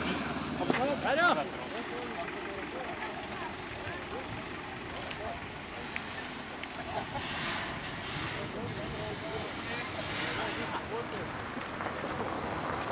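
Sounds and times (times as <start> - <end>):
crowd chatter: 0.0 - 12.8.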